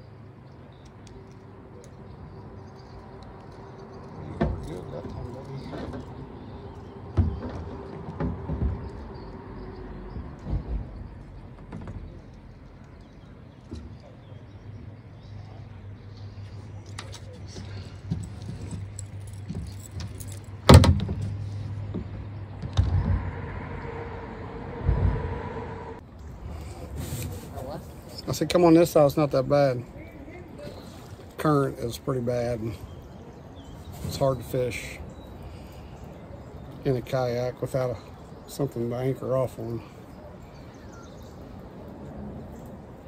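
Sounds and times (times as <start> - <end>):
low vehicle hum: 0.0 - 43.0.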